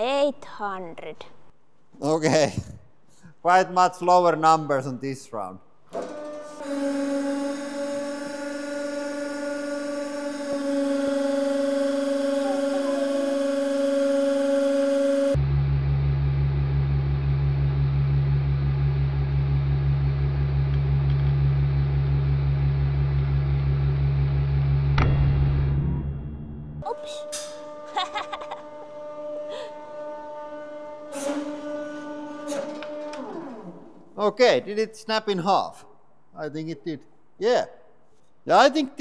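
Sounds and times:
hydraulic press humming: 5.9 - 15.4, 26.8 - 34.2.

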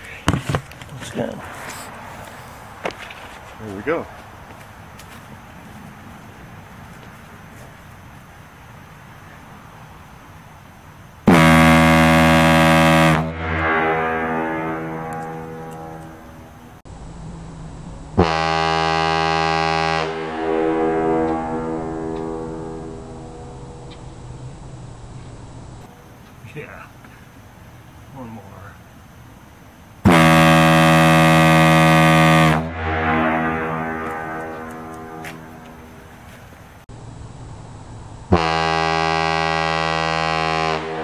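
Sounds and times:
deep air horn blasts: 11.2 - 16.8, 18.2 - 23.9, 30.0 - 36.6, 38.3 - 41.0.

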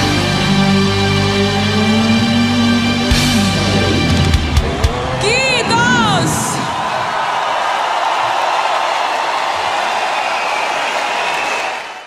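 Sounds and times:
crowd applauding and cheering: 3.2 - 12.0.

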